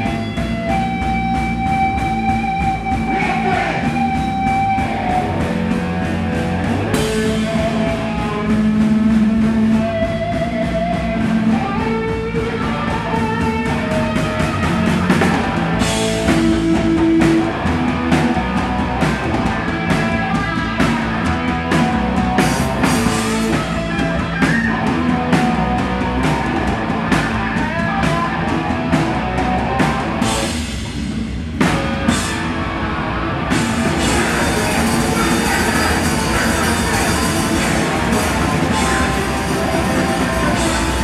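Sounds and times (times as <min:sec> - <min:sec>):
bass guitar: 0:00.0 - 0:41.0
distorted electric guitar: 0:00.0 - 0:41.0
rapid pounding drums and cymbals: 0:00.0 - 0:41.0.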